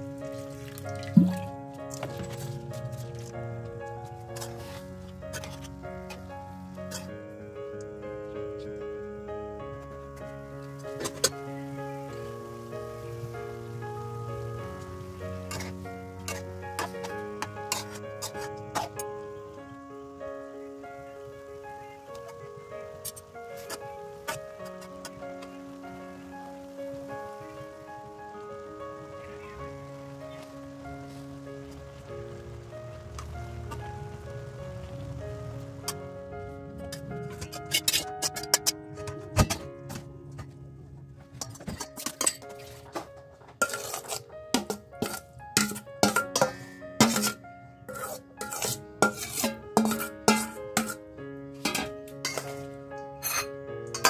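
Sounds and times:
background music: 0.0s - 54.0s
metal spoon clinking against bowl: 43.6s - 51.0s, 51.6s - 52.6s, 53.2s - 54.0s.

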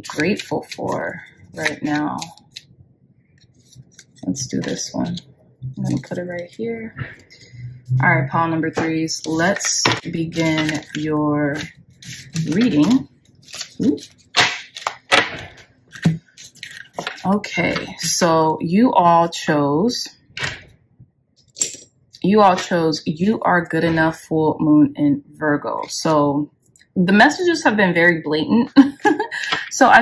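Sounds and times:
cards clicking and scraping: 9.3s - 18.0s.

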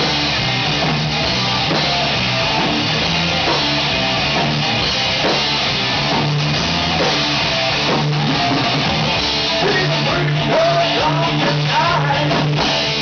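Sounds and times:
bass guitar: 0.0s - 13.0s
drum kit: 0.0s - 13.0s
electric guitar: 0.0s - 13.0s.

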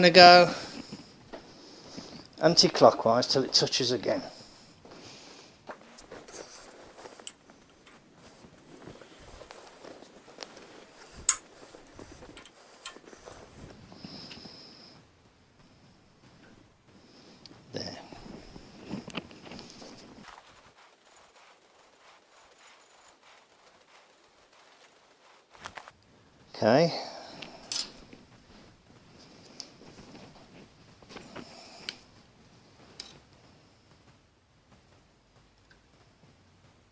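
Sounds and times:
clothing rustle: 0.0s - 36.9s
light scrapes: 5.8s - 14.7s
small metal clicks: 11.2s - 11.5s, 12.3s - 13.1s, 27.6s - 28.0s.

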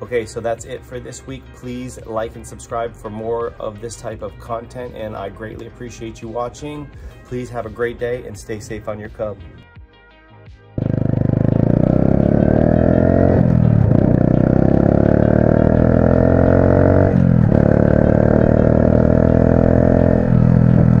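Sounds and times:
motorcycle engine accelerating: 10.8s - 21.0s.

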